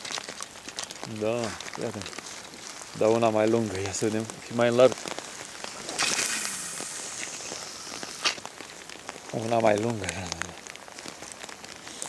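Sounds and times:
fly line hissing: 0:05.1 - 0:08.9.

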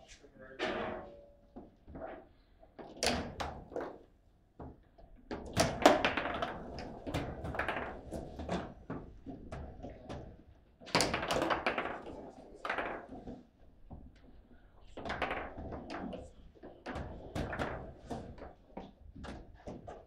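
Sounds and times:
foosball rods bumping: 0:00.6 - 0:20.0
foosball ball clacking: 0:02.8 - 0:14.2, 0:14.9 - 0:20.0.

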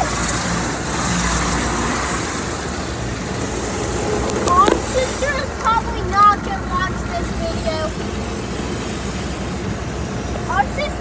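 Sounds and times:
deep rumble: 0:00.0 - 0:08.4
water spray rushing: 0:00.0 - 0:11.0.

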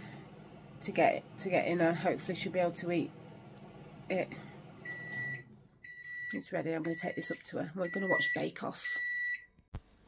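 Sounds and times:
kitchen timer beeping: 0:04.8 - 0:09.5.

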